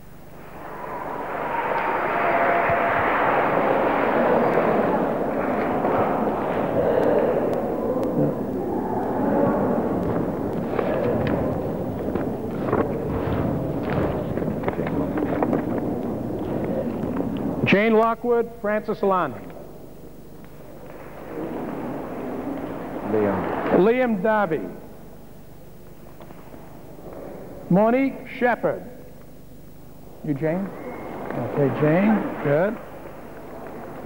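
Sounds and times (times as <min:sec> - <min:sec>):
audience applauding: 0:00.4 - 0:17.6, 0:30.7 - 0:34.0.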